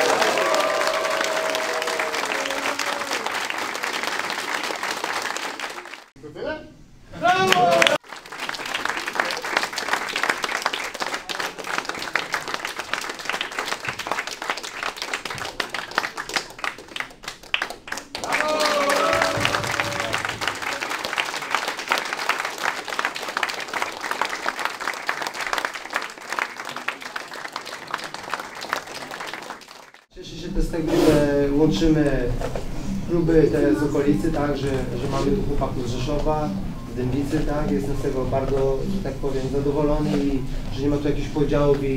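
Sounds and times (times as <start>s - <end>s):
crowd clapping: 0.0s - 6.2s, 7.4s - 30.1s.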